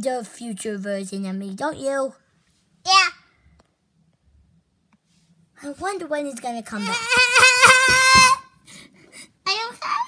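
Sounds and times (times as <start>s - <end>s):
high-pitched spoken yeah: 0.0s - 2.2s, 2.8s - 3.3s, 5.6s - 8.4s, 9.4s - 10.0s
faint low hum: 0.0s - 10.0s.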